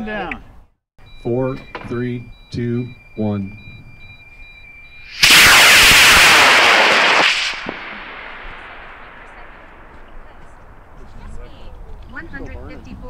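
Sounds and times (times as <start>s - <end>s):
rocket motor crackling rush: 5.1s - 11.0s.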